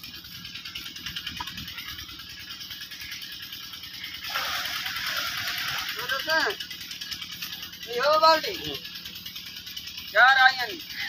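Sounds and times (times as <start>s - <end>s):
crackly outdoor noise: 0.0s - 11.0s.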